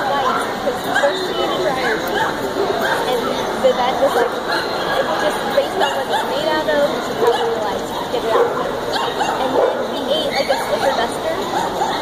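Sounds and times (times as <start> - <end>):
people talking: 0.0 - 12.0
dog barking: 7.2 - 12.0.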